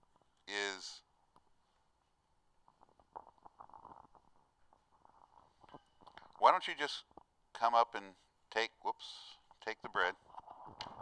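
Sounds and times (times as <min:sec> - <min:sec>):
soft handling clicks and rustles: 0:01.2 - 0:06.4.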